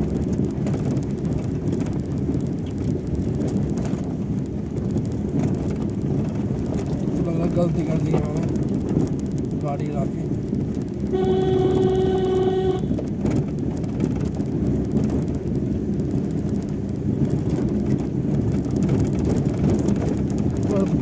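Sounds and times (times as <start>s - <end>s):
tyres on rough dirt road: 0.0s - 21.0s
vehicle engine rumble: 0.0s - 21.0s
vehicle horn: 11.1s - 13.0s.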